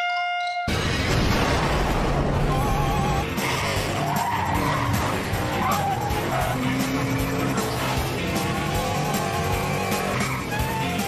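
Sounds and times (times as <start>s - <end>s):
background music: 0.0s - 11.0s
cartoon car engine: 2.4s - 11.0s.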